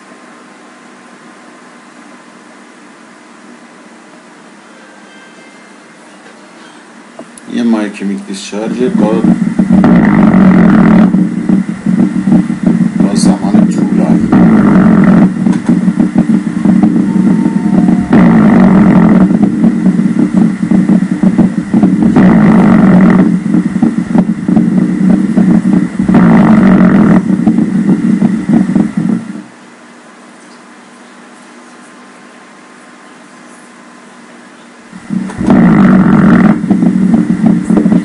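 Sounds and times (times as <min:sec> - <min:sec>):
low electrical buzz from loudspeaker: 0:00.0 - 0:38.0.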